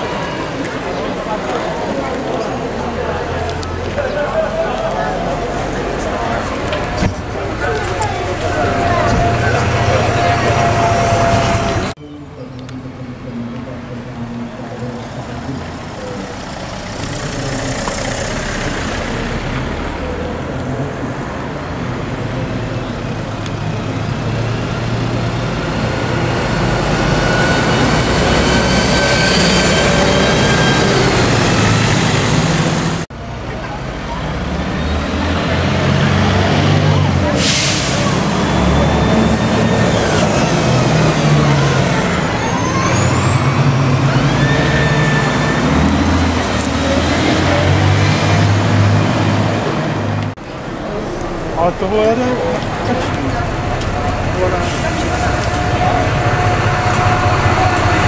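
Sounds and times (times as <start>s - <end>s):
bus diesel engine accelerating: 0.0s - 58.0s
rising engine whine: 1.9s - 21.2s, 23.4s - 33.1s.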